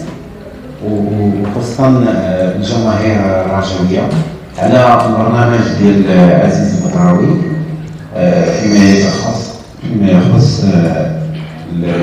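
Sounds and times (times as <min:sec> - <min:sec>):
man speaking into microphones: 0:00.8 - 0:12.0.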